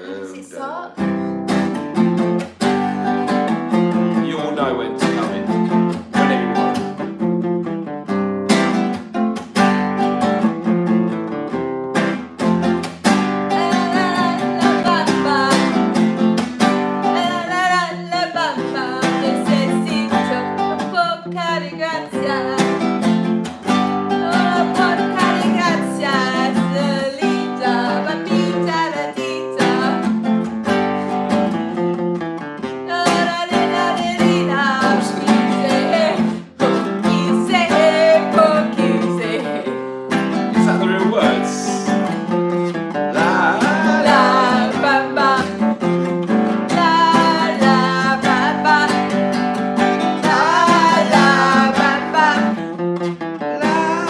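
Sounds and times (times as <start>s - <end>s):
acoustic guitar strumming: 0.0s - 54.0s
person singing: 5.0s - 6.9s, 13.5s - 22.8s, 24.1s - 30.2s, 32.9s - 52.7s, 53.4s - 54.0s.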